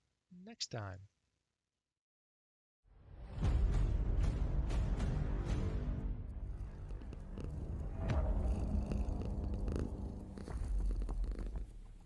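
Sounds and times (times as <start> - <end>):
low pulsing purr: 6.4 - 12.0.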